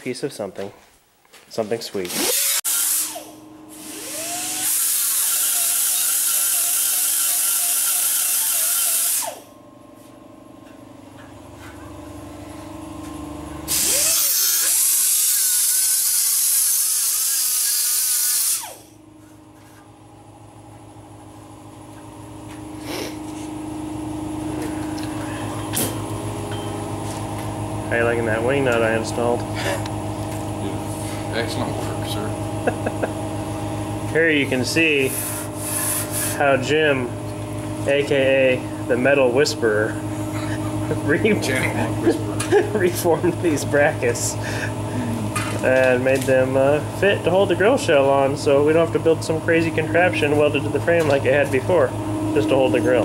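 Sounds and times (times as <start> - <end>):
power tool spinning with hiss: 2.1 - 9.5, 13.7 - 18.9, 22.8 - 23.2, 34.8 - 36.5
steady hum: 9.0 - 53.0.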